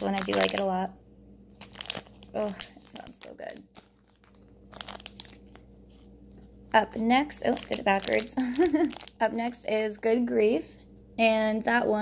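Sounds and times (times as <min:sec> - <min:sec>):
plastic bags crinkling: 0:00.0 - 0:00.8, 0:01.5 - 0:06.1, 0:06.7 - 0:09.7.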